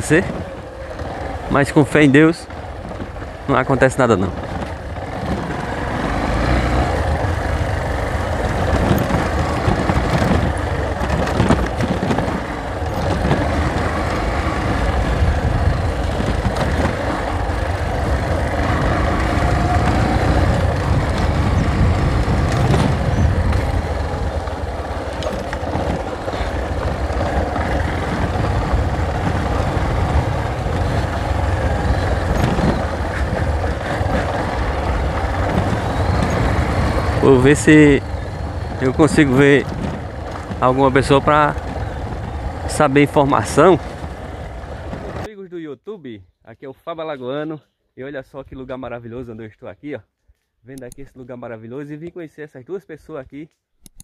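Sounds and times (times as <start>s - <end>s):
motorcycle engine running: 0.0s - 45.3s
knocks over bumps: 4.1s - 45.3s.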